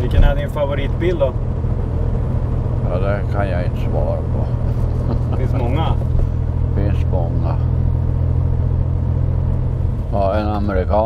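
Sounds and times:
car engine drone: 0:00.0 - 0:11.0
road noise: 0:00.0 - 0:11.0.

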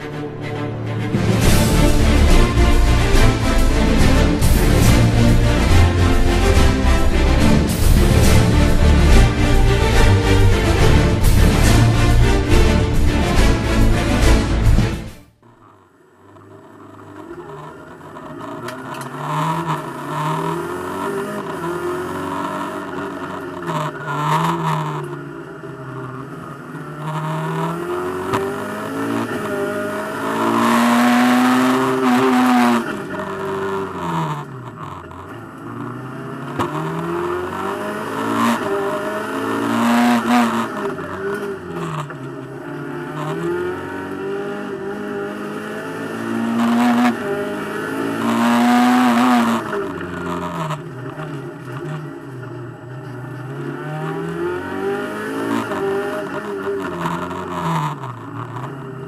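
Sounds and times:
car engine revving through gears: 0:00.0 - 0:59.0.

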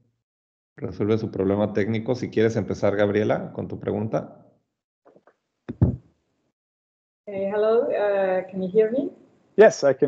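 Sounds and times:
quick knocks: 0:05.1 - 0:06.1.

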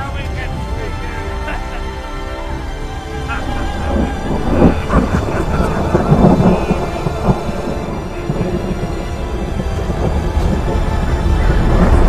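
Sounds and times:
dramatic music: 0:00.0 - 0:12.0
heavy low rumble: 0:02.4 - 0:12.0.

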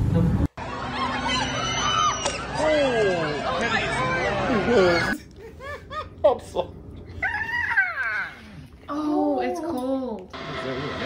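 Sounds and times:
dog whining: 0:07.1 - 0:08.6.

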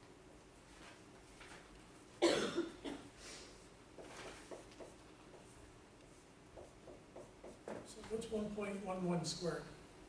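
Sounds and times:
person coughing: 0:02.2 - 0:03.1.

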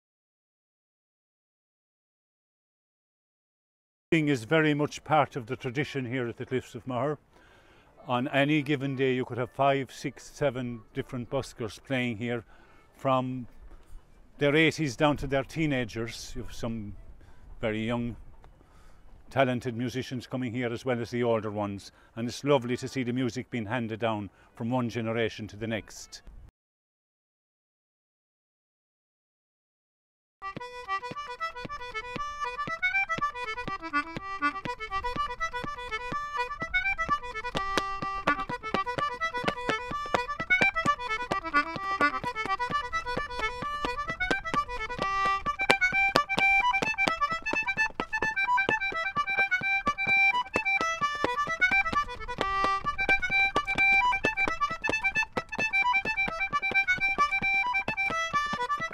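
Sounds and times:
concertina playing dance tune: 0:30.4 - 0:58.9
sharp taps: 0:30.5 - 0:58.9.

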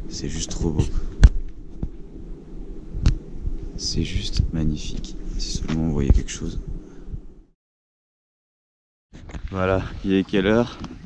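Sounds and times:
steady low rumble: 0:00.0 - 0:07.6
sharp thump: 0:01.2 - 0:01.9.

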